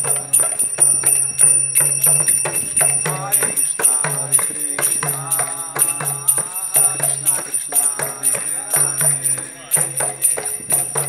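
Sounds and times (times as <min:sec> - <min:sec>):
hand cymbals: 0:00.0 - 0:11.0
hand drum: 0:00.0 - 0:11.0
voices chanting: 0:00.0 - 0:11.0.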